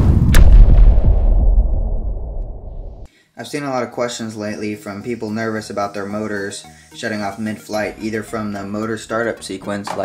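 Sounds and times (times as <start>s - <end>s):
explosion blast with rumble: 0.0s - 3.1s.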